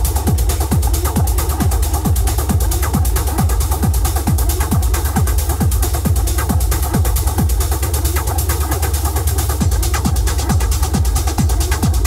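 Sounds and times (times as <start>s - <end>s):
hi-hat ticks: 0.0s - 12.0s
kick drum: 0.0s - 12.0s
techno bass drone: 0.0s - 12.0s.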